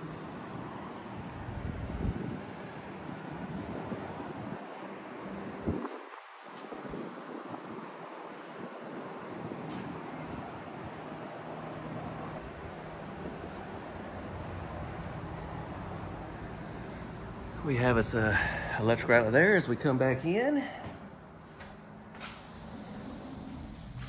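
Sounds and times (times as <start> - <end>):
wind blowing across microphone: 0.5 - 11.4.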